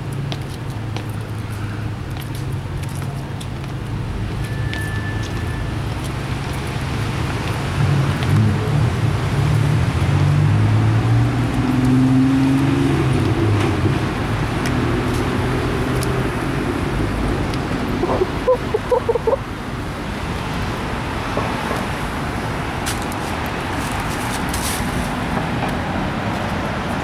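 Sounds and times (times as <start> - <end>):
brief high squeal: 4.4 - 5.8.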